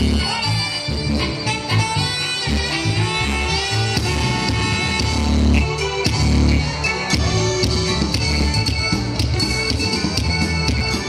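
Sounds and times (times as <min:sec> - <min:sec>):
electric bass: 0:00.0 - 0:11.0
horns and saxophones: 0:00.0 - 0:11.0
steady beat: 0:02.4 - 0:11.0.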